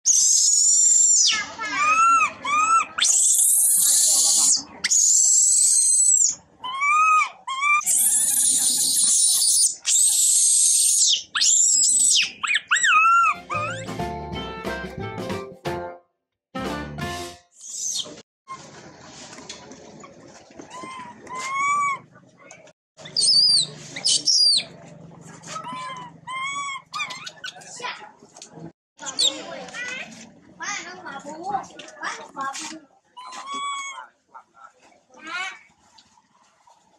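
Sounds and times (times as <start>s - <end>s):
baby monkey screaming: 0.1s - 13.9s, 20.7s - 22.0s, 23.0s - 24.7s, 25.6s - 27.6s, 33.2s - 34.1s
music: 13.4s - 17.5s.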